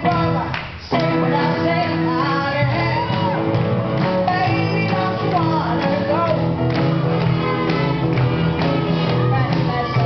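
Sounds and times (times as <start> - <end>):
live blues-rock band: 0.0 - 10.0
person singing: 0.0 - 10.0.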